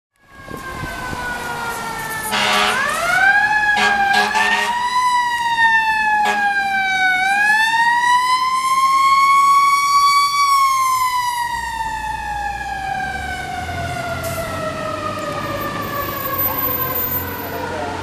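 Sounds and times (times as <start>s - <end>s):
air horn blasts: 2.2s - 3.0s, 3.7s - 4.8s, 6.2s - 6.6s.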